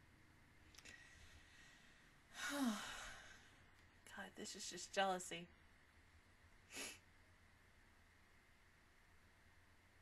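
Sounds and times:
woman sighing: 2.3s - 3.5s.

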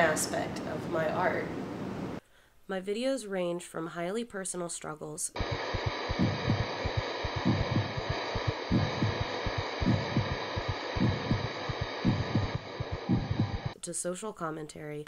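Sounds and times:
steady hiss and hum: 0.0s - 2.7s, 5.4s - 13.8s
heartbeat thumps: 5.4s - 13.8s.

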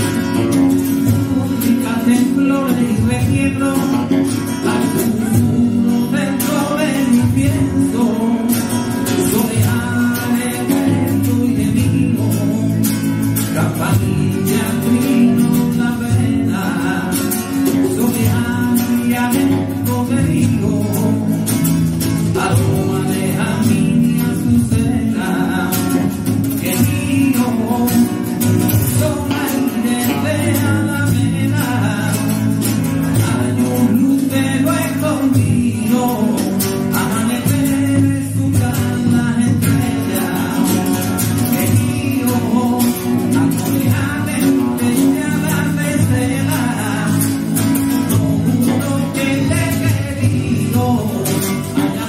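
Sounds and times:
hand drum percussion: 0.0s - 52.0s
man singing: 0.0s - 52.0s
strummed acoustic guitar: 0.0s - 52.0s.

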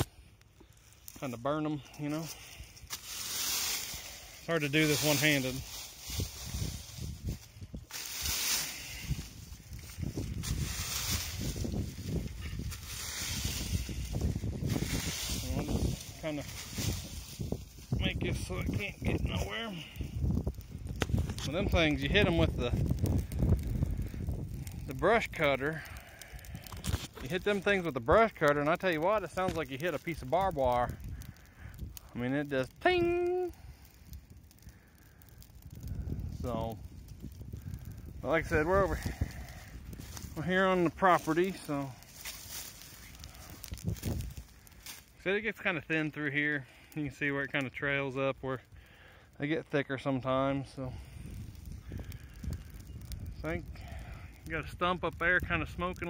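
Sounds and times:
fire crackling in leaves: 0.0s - 56.0s
leaves rustling and crunching: 2.0s - 20.5s, 38.2s - 46.3s
metal rake scraping through leaves: 2.9s - 7.2s, 7.9s - 9.5s, 10.4s - 14.0s, 14.7s - 17.5s.

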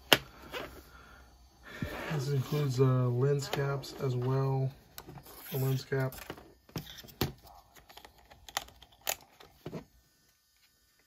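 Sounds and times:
plastic clicks of camcorder handling: 7.8s - 9.6s.

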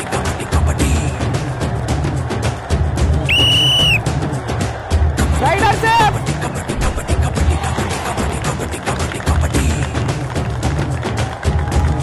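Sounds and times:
background music with beat: 0.0s - 12.0s
whistle blast: 3.3s - 4.0s.

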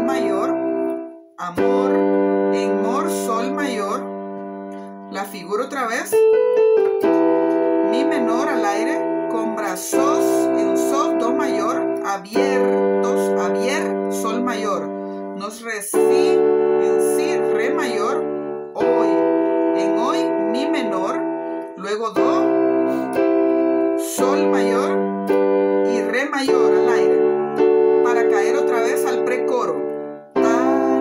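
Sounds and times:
electronic keyboard piano chords: 0.0s - 31.0s
person singing: 24.1s - 31.0s.

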